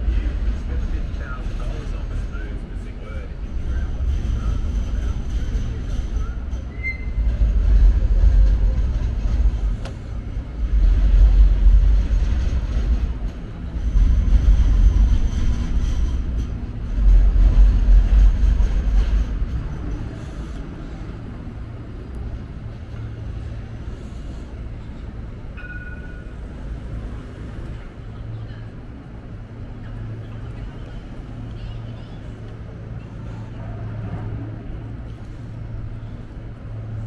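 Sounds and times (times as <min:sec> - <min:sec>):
trams and vehicles rumbling: 0:00.0 - 0:37.0.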